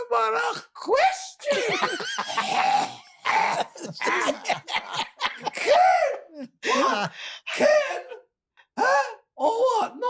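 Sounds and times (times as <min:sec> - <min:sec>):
men laughing: 0:01.4 - 0:08.2.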